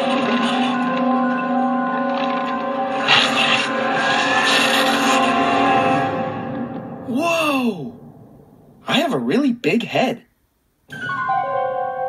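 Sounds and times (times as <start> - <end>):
faint rising tone: 0.0 - 8.8
background music: 0.0 - 8.9, 10.9 - 12.0.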